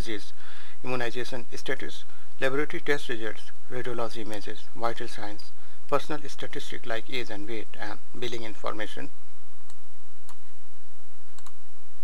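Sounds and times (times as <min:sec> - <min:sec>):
steady low hum: 0:00.0 - 0:12.0
computer mouse clicks: 0:11.4 - 0:11.6.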